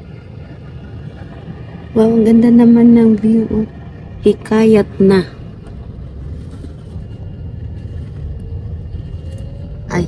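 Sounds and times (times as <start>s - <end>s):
faint rising whine: 0.0s - 10.0s
car engine and road noise: 1.9s - 10.0s.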